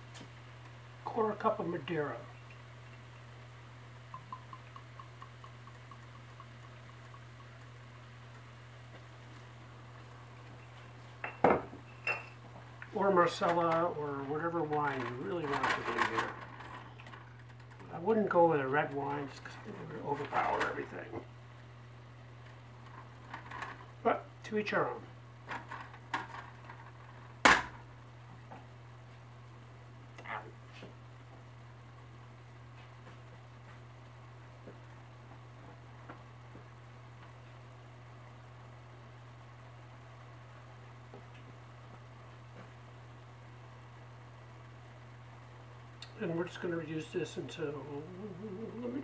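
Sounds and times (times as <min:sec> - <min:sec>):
steady low hum: 0:00.0 - 0:49.0
stirring clicks: 0:04.1 - 0:09.0.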